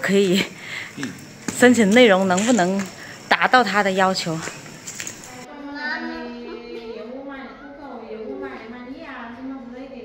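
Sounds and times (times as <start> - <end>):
small child singing: 5.5 - 8.8.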